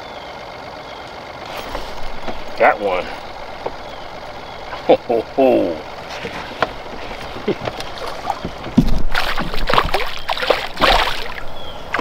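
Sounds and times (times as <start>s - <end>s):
electric motor hum and whine: 0.0s - 12.0s
boat movement noise: 1.0s - 12.0s.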